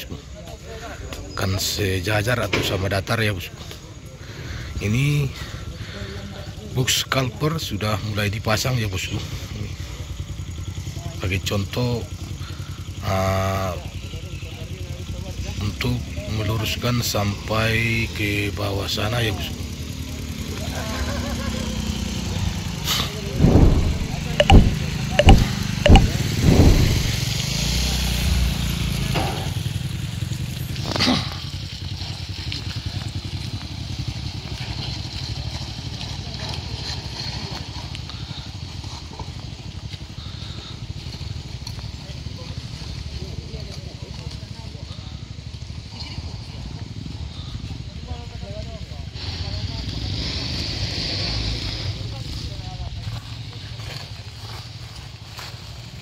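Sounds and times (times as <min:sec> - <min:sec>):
vehicle and machinery engines rumbling: 0:09.1 - 0:13.1, 0:18.8 - 0:56.0
sharp knock: 0:23.4 - 0:27.2
loud low thumps: 0:23.4 - 0:27.3.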